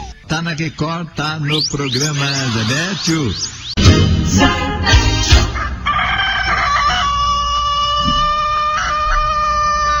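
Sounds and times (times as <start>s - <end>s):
rooster crowing: 5.5s - 10.0s.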